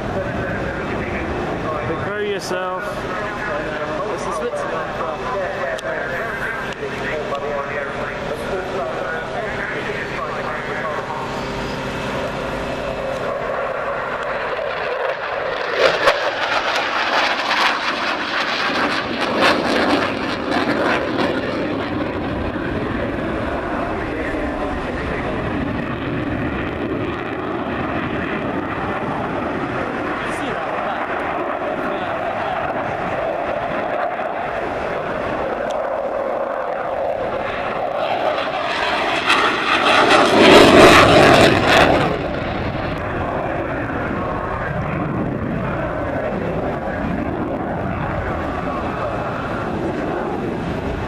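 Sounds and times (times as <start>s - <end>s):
jet aircraft engine roar: 0.0s - 51.0s.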